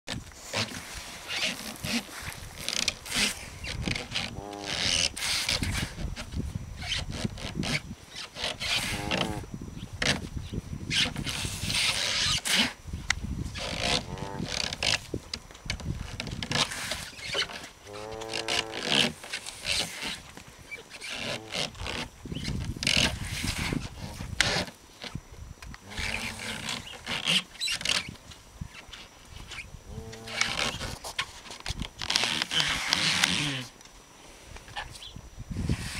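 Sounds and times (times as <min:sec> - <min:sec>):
plastic sled scraping frozen ground: 0:00.4 - 0:09.4, 0:15.8 - 0:20.3
muzzle scraping on plastic: 0:13.6 - 0:25.2
groaning drone: 0:29.9 - 0:30.8.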